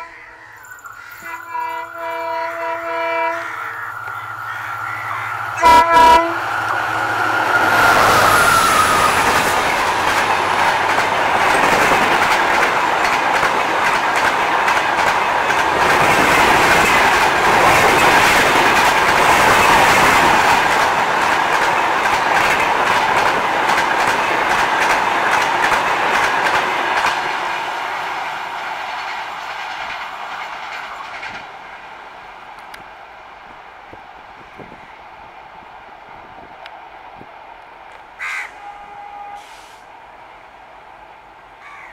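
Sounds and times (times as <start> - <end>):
train wheels clattering over rail joints: 9.1 - 27.8, 28.7 - 31.6.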